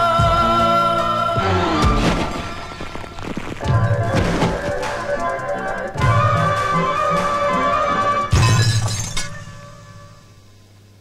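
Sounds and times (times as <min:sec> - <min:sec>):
film song music: 0:00.0 - 0:08.4
glass shattering: 0:08.3 - 0:09.7.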